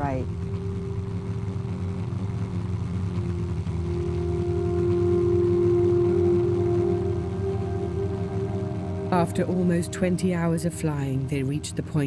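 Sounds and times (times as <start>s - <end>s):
ambient music: 0.0s - 12.0s
propeller aircraft engine drone: 0.0s - 12.0s.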